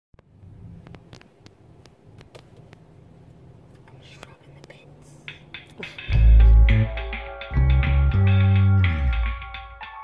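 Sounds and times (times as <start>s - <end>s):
low hum inside car: 0.2s - 6.8s
faint whispered voice: 3.7s - 5.3s.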